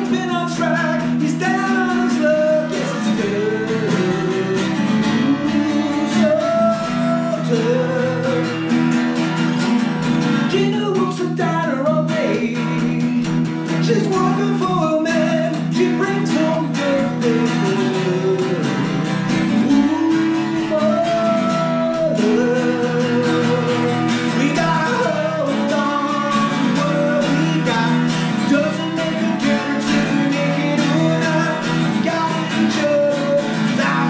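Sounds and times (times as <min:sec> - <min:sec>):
man singing: 0:00.0 - 0:09.4, 0:10.4 - 0:34.0
acoustic guitar strummed: 0:00.0 - 0:34.0.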